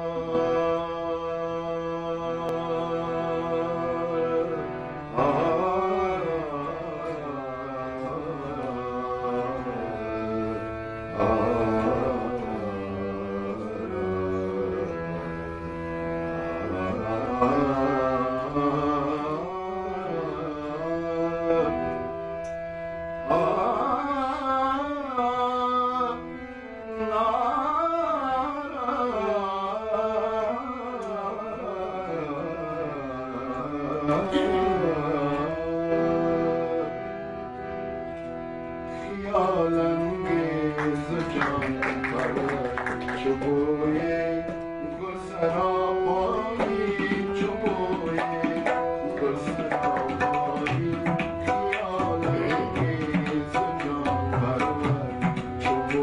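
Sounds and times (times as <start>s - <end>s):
man singing ornamented melody: 0.0s - 15.6s, 16.4s - 21.9s, 23.3s - 26.3s, 27.1s - 36.9s, 38.9s - 56.0s
harmonium chord: 0.0s - 56.0s.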